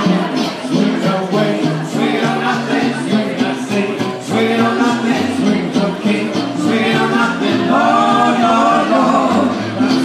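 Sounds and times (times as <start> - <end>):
acoustic swing band playing: 0.0 - 10.0
upright bass: 0.0 - 10.0
voices singing: 0.0 - 10.0.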